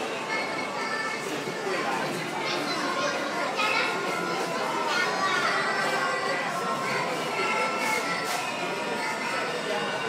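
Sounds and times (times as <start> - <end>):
background chatter: 0.0 - 10.0
children and adults calling: 0.1 - 10.0.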